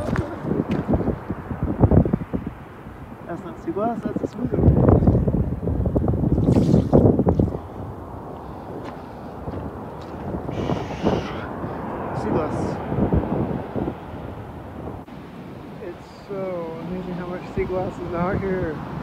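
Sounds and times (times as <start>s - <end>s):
surf on pebble beach: 0.0s - 1.6s, 15.0s - 19.0s
wind buffeting microphone: 0.0s - 19.0s.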